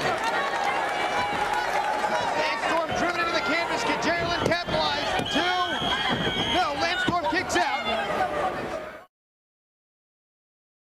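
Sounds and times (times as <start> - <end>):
crowd yelling and cheering: 0.0 - 9.1.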